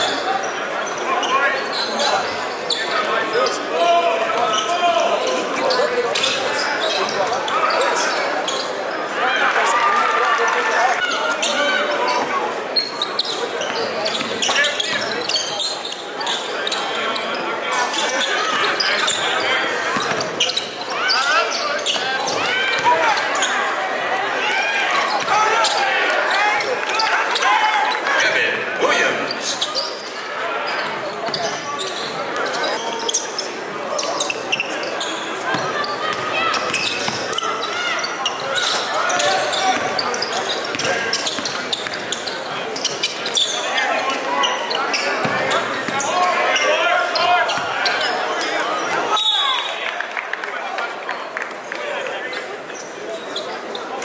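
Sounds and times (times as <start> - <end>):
crowd voices echoing in a hall: 0.0 - 54.0.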